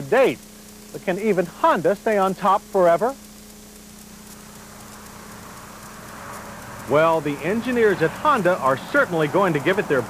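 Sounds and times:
low hum: 0.0 - 10.0
soft hiss: 0.0 - 10.0.

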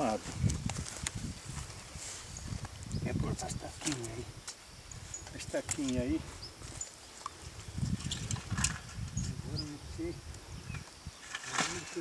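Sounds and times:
rustling noise: 0.0 - 9.5.

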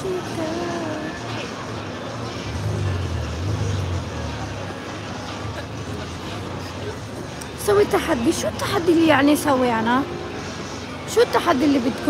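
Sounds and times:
street traffic engine rumble: 0.0 - 12.0.

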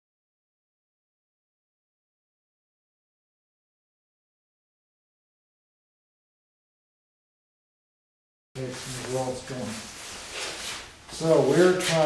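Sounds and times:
person speaking: 8.6 - 10.0, 11.1 - 12.0
faint rustling and handling noise: 8.6 - 12.0.

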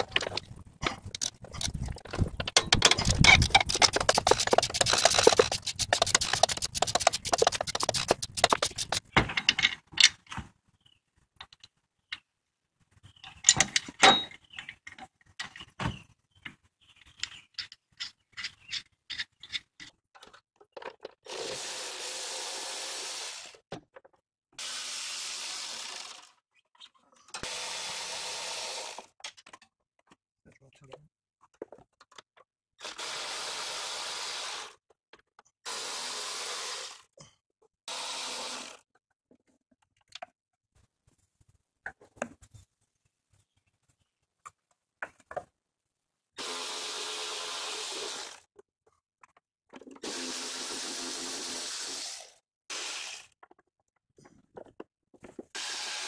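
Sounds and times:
tools and parts knocking: 0.0 - 10.3, 17.2 - 21.2
ratchet wrench clicking: 2.9 - 9.0.

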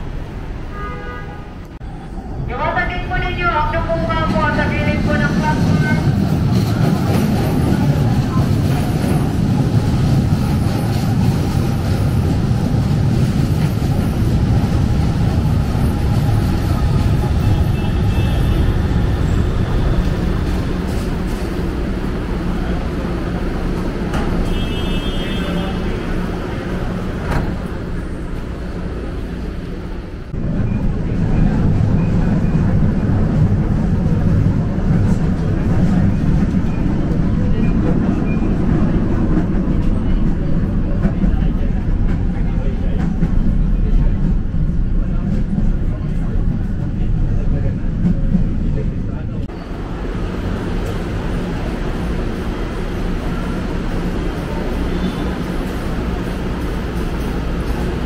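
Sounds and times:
running noise inside train car: 0.0 - 58.0
train wheels rumbling on rails: 3.0 - 58.0.

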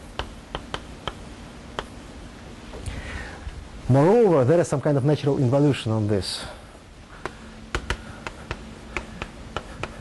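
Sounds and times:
chalk tapping on board: 0.1 - 1.9, 7.2 - 10.0.

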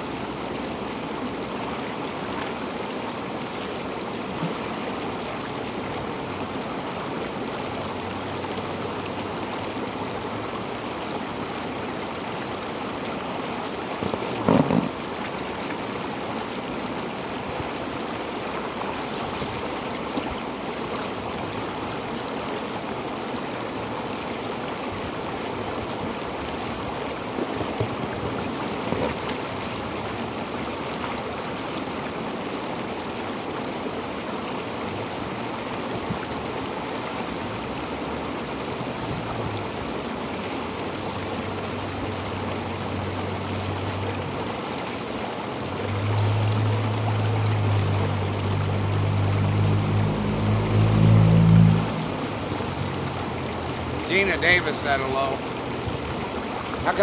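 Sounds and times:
hot tub water bubbling: 0.0 - 57.0
low hum: 45.8 - 53.9.

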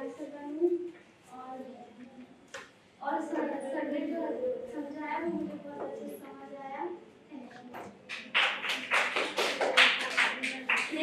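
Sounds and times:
group clapping: 7.8 - 11.0.

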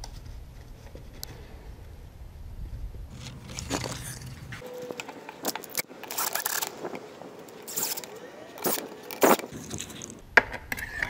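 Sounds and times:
metallic scrape: 3.1 - 4.8.

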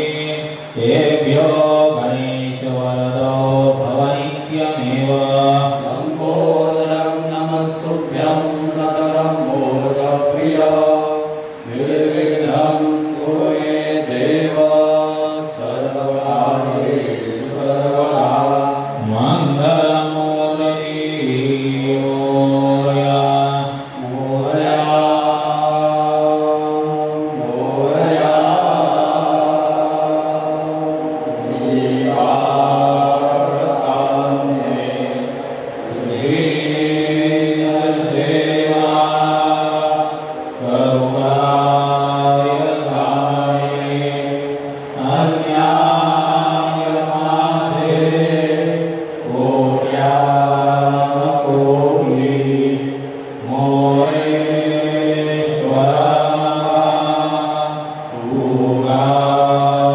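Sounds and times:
voices chanting a hymn: 0.0 - 59.9
steady low drone: 7.4 - 59.2.

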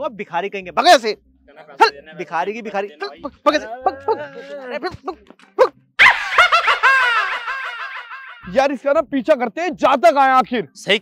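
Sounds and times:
high-pitched comic laughter: 5.6 - 8.5.

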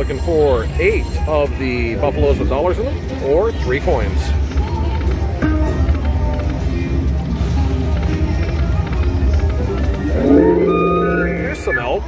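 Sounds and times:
low hum: 10.0 - 12.0
slot machine jingle music: 10.0 - 12.0
rising chimes: 10.1 - 12.0.

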